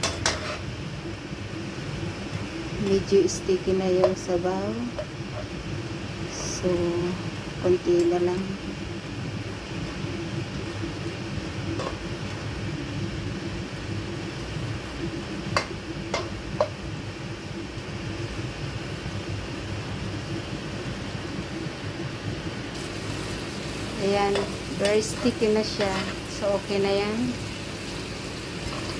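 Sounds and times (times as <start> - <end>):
steady fan-like hum: 0.0 - 28.9
sauce simmering in a wok: 0.1 - 22.1, 22.7 - 28.9
spatula knocking against pan: 15.5 - 16.8.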